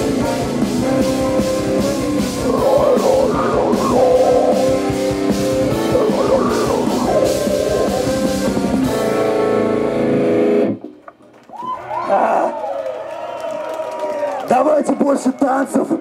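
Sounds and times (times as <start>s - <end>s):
heavy metal band playing: 0.0s - 10.8s
people shouting: 2.2s - 5.0s.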